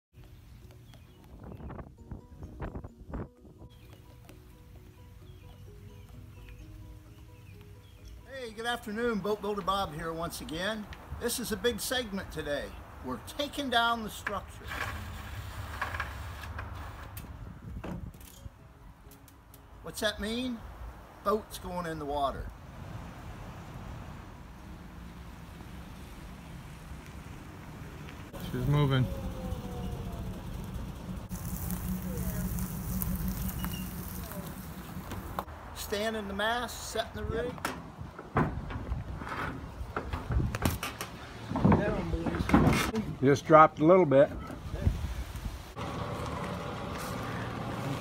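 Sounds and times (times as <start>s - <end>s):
low rumble: 28.4s - 35.5s
low voices: 28.4s - 35.5s.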